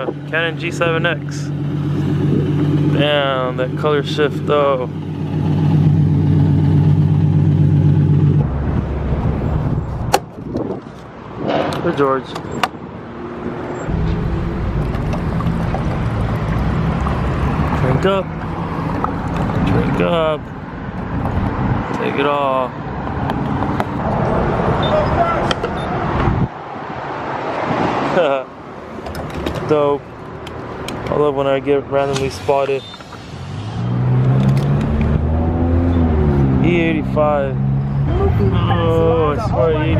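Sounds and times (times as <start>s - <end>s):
vehicle engine humming: 0.0s - 39.9s.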